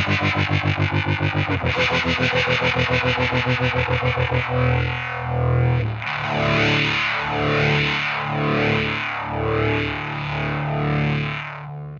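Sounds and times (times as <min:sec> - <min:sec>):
fuzzed electric guitar chords: 0:00.0 - 0:11.9.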